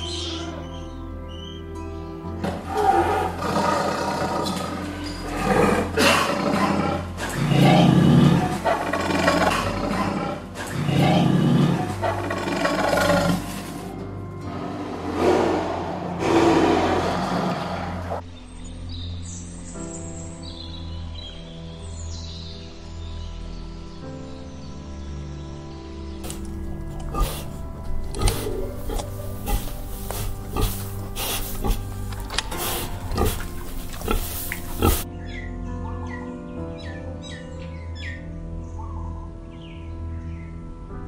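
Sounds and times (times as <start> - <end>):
soft piano music: 0.0 - 15.1, 18.2 - 41.0
big cat growling and roaring: 2.5 - 18.2, 26.3 - 35.1.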